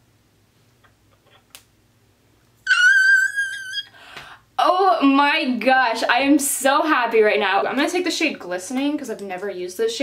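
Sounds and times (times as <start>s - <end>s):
woman squealing with joy: 2.6s - 4.0s.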